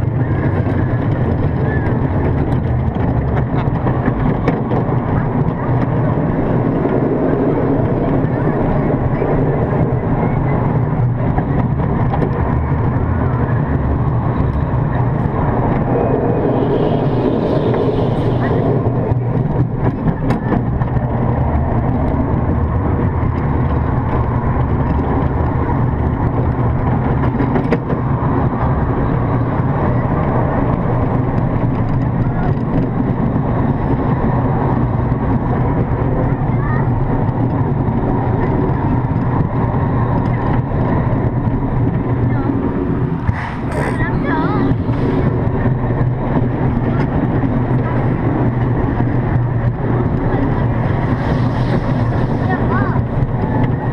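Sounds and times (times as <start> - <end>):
roller coaster wheels rumbling: 0.0 - 53.9.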